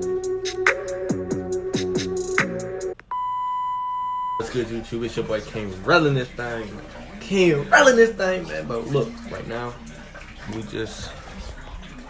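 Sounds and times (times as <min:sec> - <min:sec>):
electronic music beat: 0:00.0 - 0:03.0
high-pitched test-tone beep: 0:03.1 - 0:04.4.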